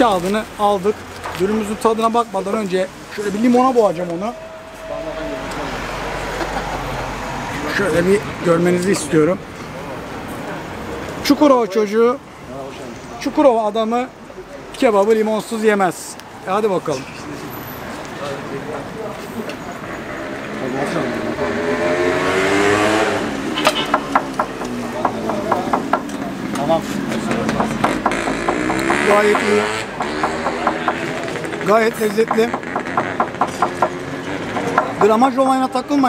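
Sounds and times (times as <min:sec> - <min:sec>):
vehicle going by: 0:00.0 - 0:11.3, 0:16.6 - 0:36.0
vehicle accelerating past: 0:19.8 - 0:25.6, 0:26.5 - 0:35.2.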